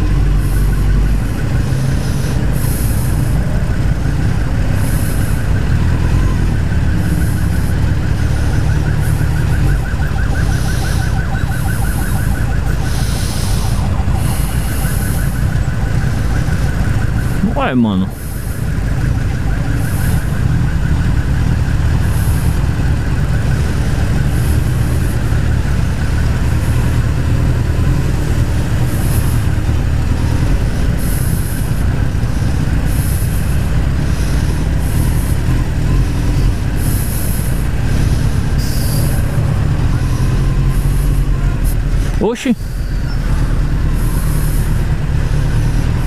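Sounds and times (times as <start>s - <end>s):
motorcycle engine idling: 0.0s - 46.0s.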